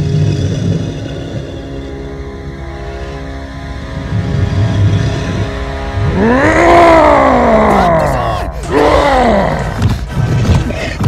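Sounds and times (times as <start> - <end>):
horror film score: 0.0 - 11.0
monster growl: 4.6 - 11.0.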